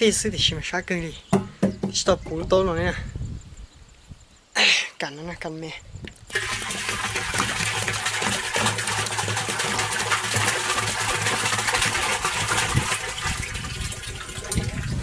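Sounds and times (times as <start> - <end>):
water pouring into plastic barrel: 6.3 - 15.0.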